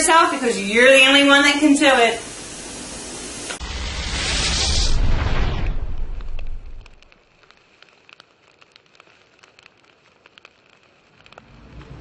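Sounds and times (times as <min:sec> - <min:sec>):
low rush of flame: 0:02.3 - 0:12.0
fire crackles and pops: 0:03.3 - 0:12.0
low rumble: 0:03.6 - 0:07.1.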